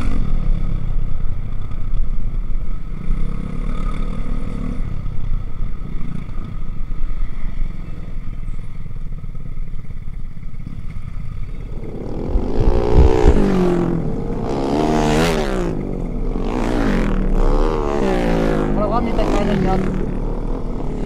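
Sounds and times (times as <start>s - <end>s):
motorcycle engine revving: 0.0s - 21.0s.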